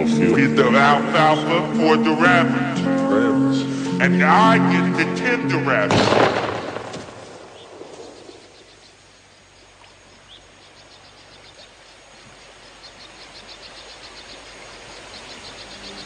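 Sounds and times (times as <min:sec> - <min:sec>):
gunshot: 0:05.9 - 0:08.1
steady hiss: 0:05.9 - 0:16.0.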